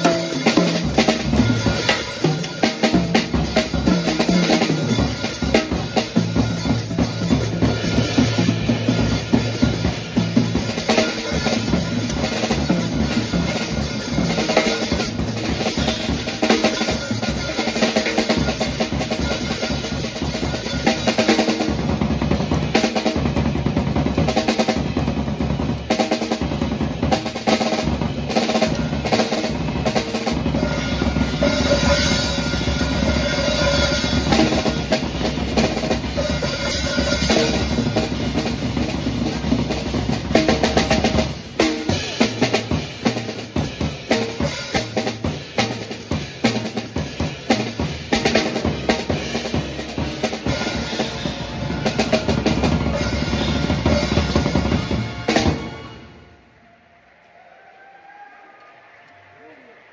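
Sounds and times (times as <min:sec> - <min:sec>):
jazz drum kit solo: 0:00.0 - 0:56.4.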